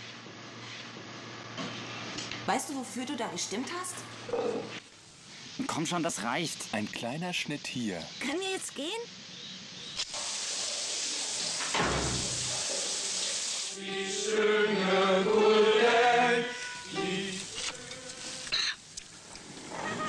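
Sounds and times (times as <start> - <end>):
steady hiss: 0.0 - 20.0
voices singing long notes: 13.7 - 18.5.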